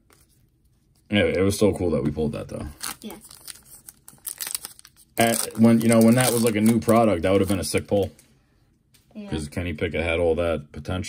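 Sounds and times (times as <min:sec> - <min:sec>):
foil wrapper crinkling and tearing: 0:02.7 - 0:08.2.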